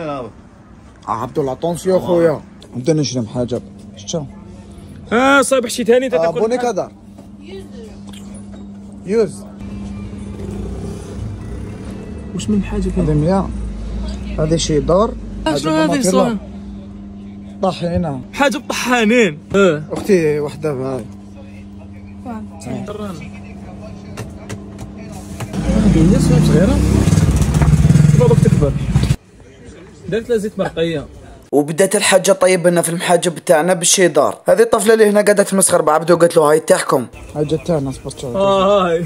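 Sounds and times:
road traffic: 0.0 - 19.6, 20.6 - 31.5, 37.1 - 39.0
people talking: 15.6 - 16.4, 17.3 - 27.1, 28.0 - 39.0
voices: 36.6 - 39.0.

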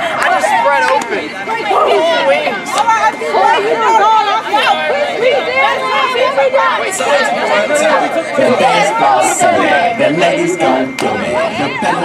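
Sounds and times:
teenagers chattering: 0.0 - 12.0.

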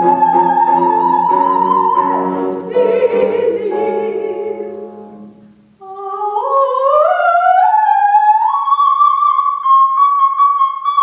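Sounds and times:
piano chords: 0.0 - 5.8
soprano singing with vibrato: 0.0 - 11.0.

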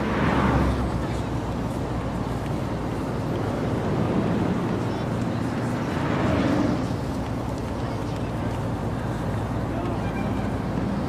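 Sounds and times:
indistinct voices: 0.0 - 11.0
low traffic rumble: 0.0 - 11.0.

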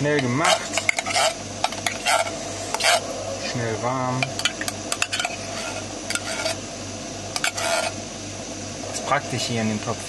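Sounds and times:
gas burner hissing: 0.0 - 10.0
spoon scraping metal pot: 0.2 - 3.1, 4.4 - 6.6, 7.4 - 8.0.

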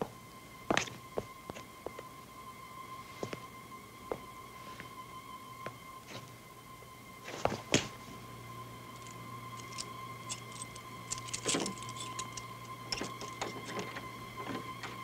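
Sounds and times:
steady high hum: 0.0 - 15.0
metallic lock clicks and rattles: 9.0 - 13.9.

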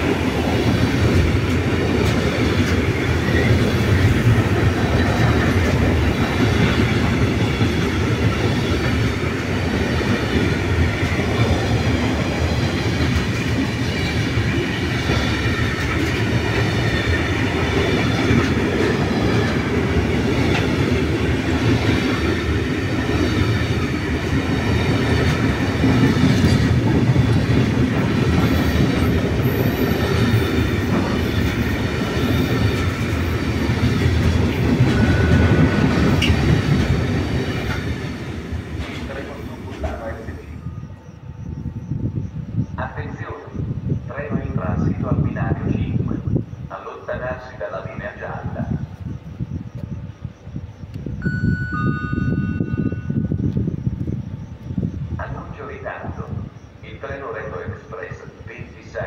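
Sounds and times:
freight train wheels rumbling: 0.0 - 59.0.

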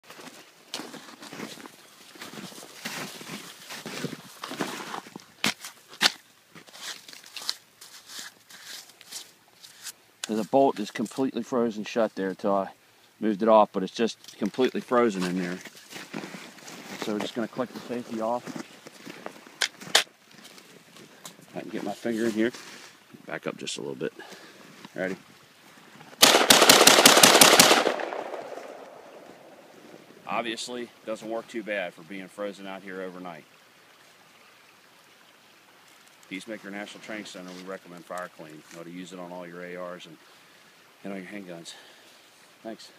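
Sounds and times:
footsteps crunching in snow: 0.0 - 10.0, 15.2 - 23.0
snow crunching and scraping: 0.0 - 10.6, 15.1 - 23.0
sharp rifle clicks: 26.2 - 29.2
gunshots echoing: 26.2 - 29.7.

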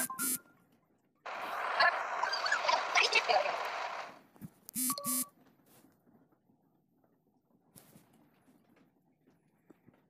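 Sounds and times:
smartphone volume beep: 0.0 - 0.4, 4.8 - 5.3.

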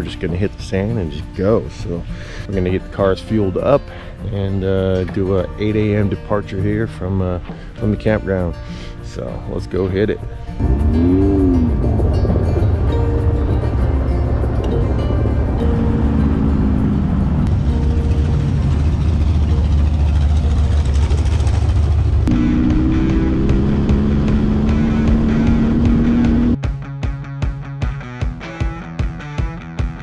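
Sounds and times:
background music: 0.0 - 30.0
engine running: 3.3 - 26.6
rock music with steady beat: 6.8 - 18.6, 22.3 - 30.0.

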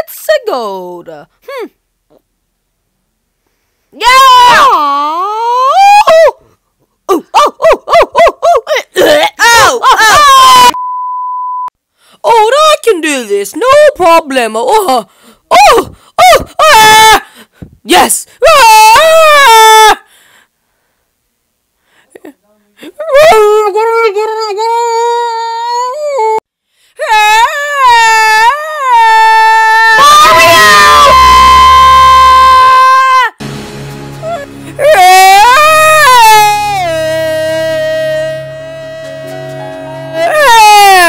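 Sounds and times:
loud scream: 4.0 - 6.2, 9.4 - 10.8, 15.6 - 17.2, 18.4 - 20.0, 27.1 - 33.4, 34.8 - 41.0.

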